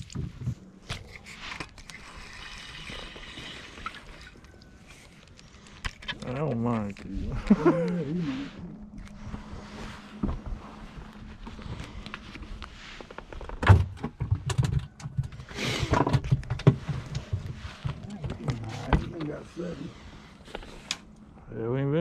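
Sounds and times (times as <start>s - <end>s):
laughter: 7.3s - 8.5s.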